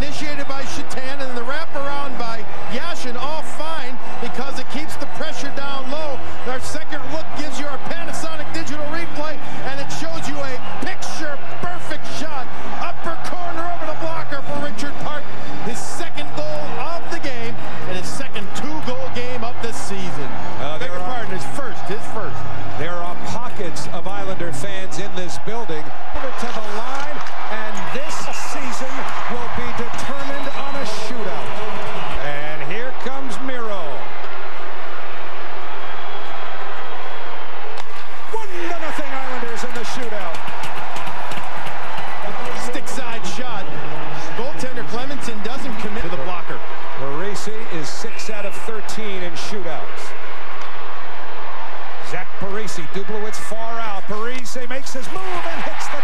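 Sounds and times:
crowd noise: 0.0 - 56.0
music over arena pa: 0.0 - 56.0.

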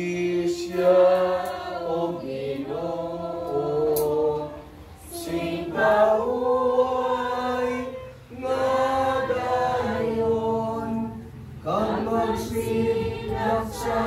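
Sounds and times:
group singing a hymn: 0.0 - 14.0.

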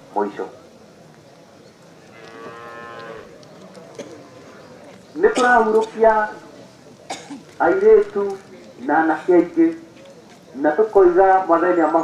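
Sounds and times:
cow mooing: 2.1 - 3.3.

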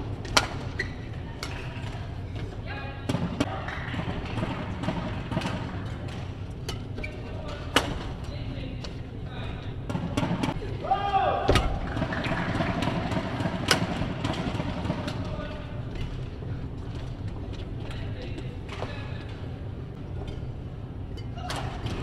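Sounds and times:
racket hitting shuttlecock: 0.2 - 2.0, 3.1 - 8.1, 11.4 - 15.4.

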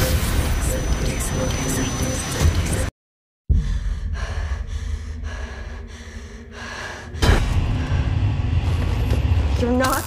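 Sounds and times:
woman breathing heavily: 3.5 - 8.4.

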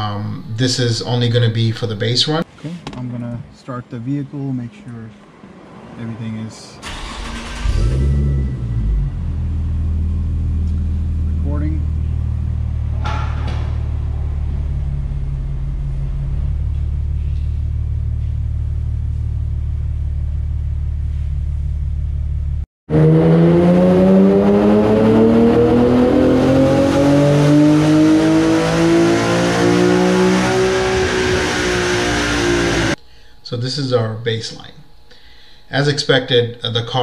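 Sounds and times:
car engine idling: 6.8 - 22.6
car engine revving at full throttle: 22.9 - 33.0.

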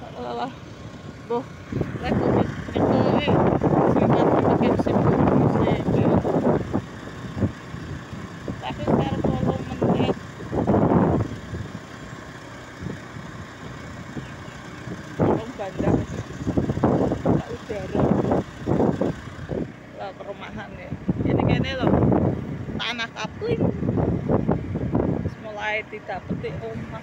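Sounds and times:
person talking: 0.0 - 0.6, 1.3 - 6.3, 8.6 - 10.2, 15.2 - 16.3, 17.3 - 18.2, 20.0 - 22.0, 22.8 - 23.9, 25.3 - 27.0
motorbike engine and wind rumble: 0.0 - 27.0.

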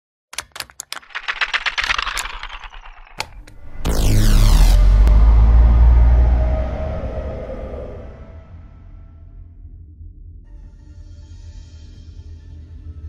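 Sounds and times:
sharp clicks: 0.4 - 4.1
loud low drone: 2.9 - 10.2.

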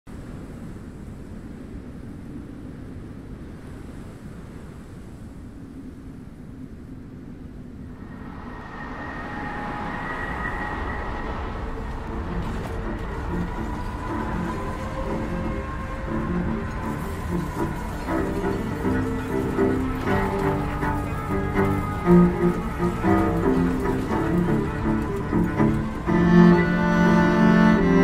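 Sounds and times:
deep rumbling soundtrack: 7.7 - 28.0
eerie sustained music tones: 8.0 - 28.0.

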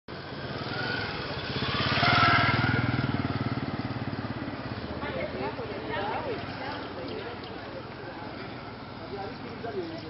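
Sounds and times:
motorcycle passing by: 0.1 - 10.0.

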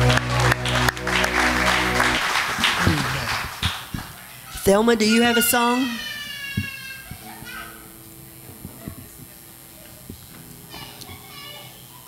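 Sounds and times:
child's high voice: 4.4 - 7.9, 10.7 - 12.0
soft low thumps: 8.3 - 10.4.

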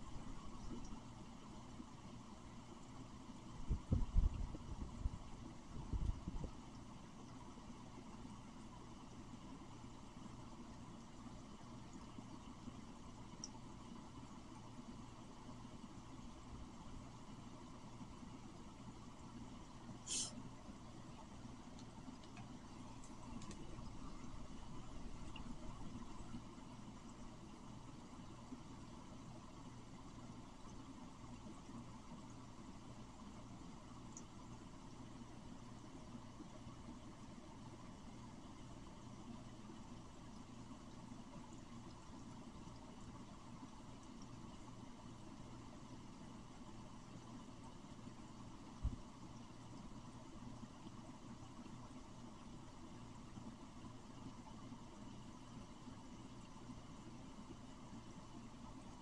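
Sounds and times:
faint low hum: 0.0 - 59.0.

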